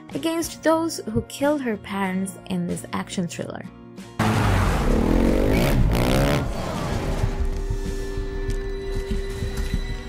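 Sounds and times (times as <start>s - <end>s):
dirt bike engine revving: 4.2s - 7.4s.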